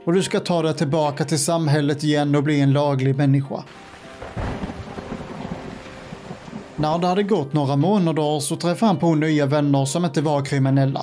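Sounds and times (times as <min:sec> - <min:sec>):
steady rain falling: 0:03.7 - 0:07.4.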